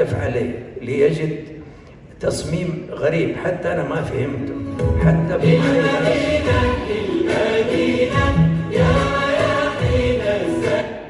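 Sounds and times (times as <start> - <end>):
choir singing held notes: 4.6 - 11.0.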